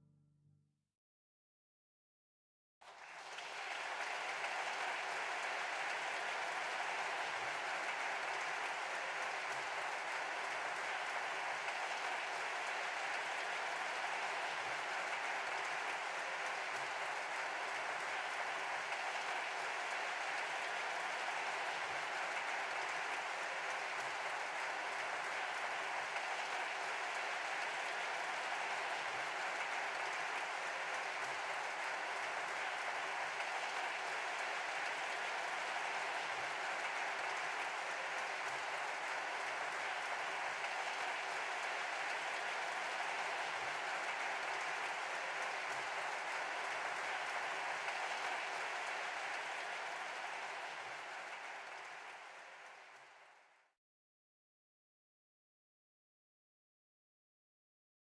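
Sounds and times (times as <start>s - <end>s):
audience applauding: 2.8s - 53.6s.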